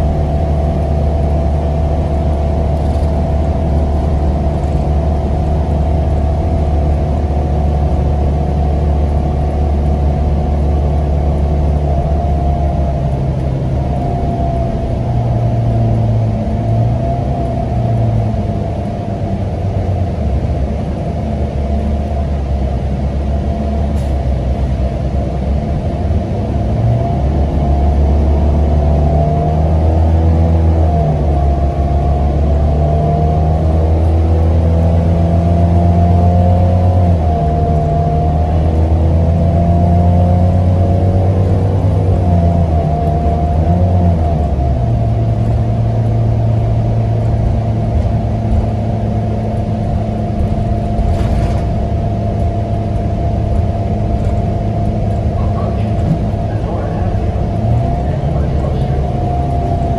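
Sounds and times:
bus engine drone: 0.0s - 59.9s
drivetrain whine: 0.0s - 59.9s.

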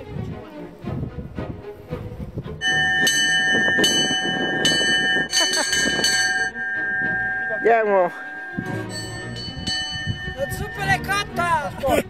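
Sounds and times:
metal bell ringing: 2.6s - 11.6s.

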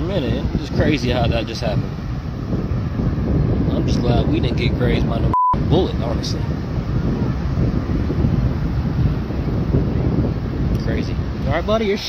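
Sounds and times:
wind on microphone: 0.0s - 12.0s.

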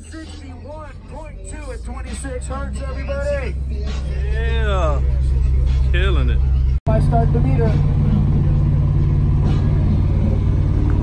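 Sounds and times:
subwoofer playing low bass note: 0.0s - 11.0s
people talking: 1.2s - 7.9s.

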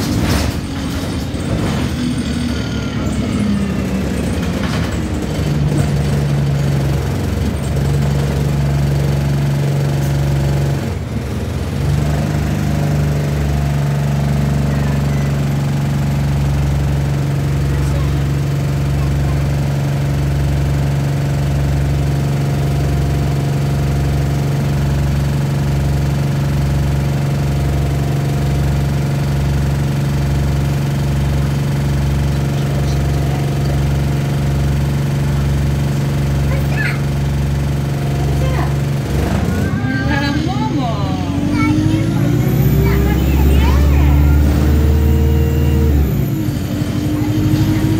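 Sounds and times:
bus diesel engine idling: 0.0s - 47.9s.

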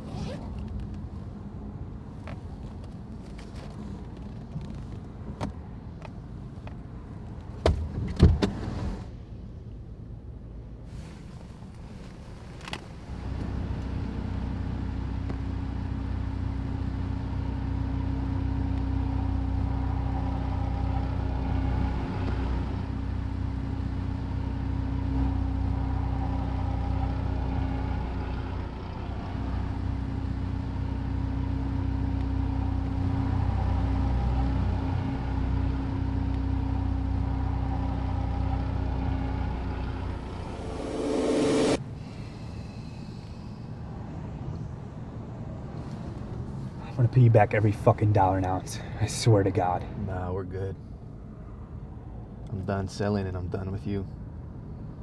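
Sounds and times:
car engine idling: 13.2s - 43.9s.

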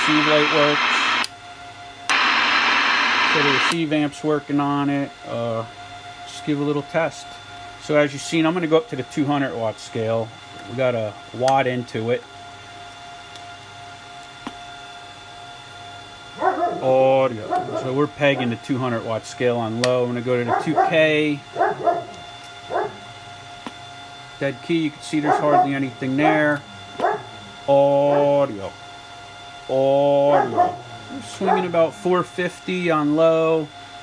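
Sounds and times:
person speaking: 0.0s - 1.2s, 16.8s - 21.4s, 24.4s - 26.6s, 27.7s - 28.7s, 29.7s - 33.2s
radio static hiss: 0.0s - 1.3s, 2.1s - 4.1s, 24.4s - 28.8s, 29.7s - 33.7s
faint electronic whine: 0.0s - 12.3s, 13.3s - 34.0s.

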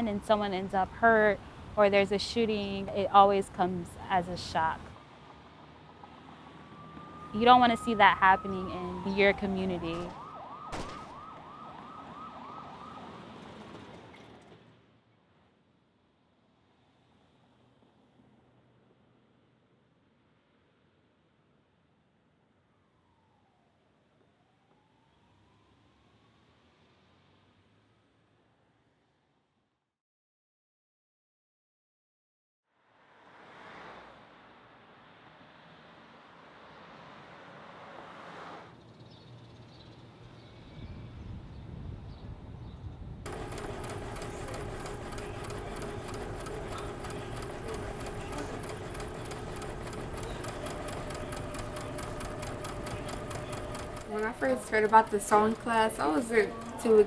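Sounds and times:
low traffic rumble: 0.0s - 14.4s
cars driving past: 3.1s - 10.3s, 32.9s - 38.8s
emergency siren yelping: 6.6s - 13.4s.

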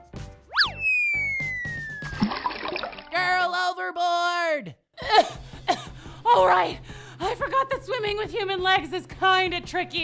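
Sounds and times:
long falling whistle: 0.5s - 2.2s.

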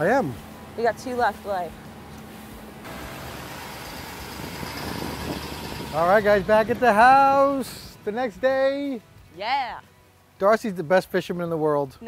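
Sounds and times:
diesel engine running: 0.0s - 8.1s.

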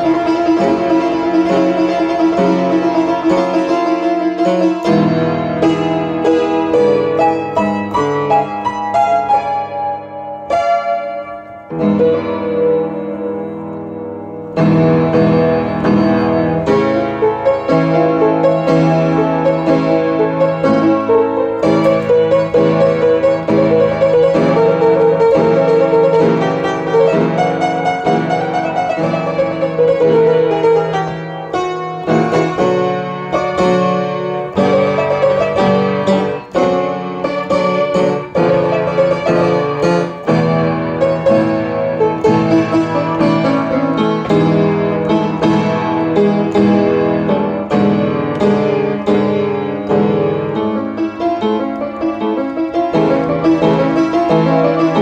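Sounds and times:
piano music: 0.0s - 55.0s.

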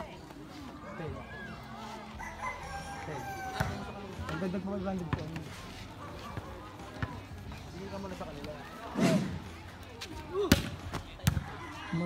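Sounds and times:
faint voices: 0.0s - 12.0s
rooster crowing: 2.2s - 3.8s.

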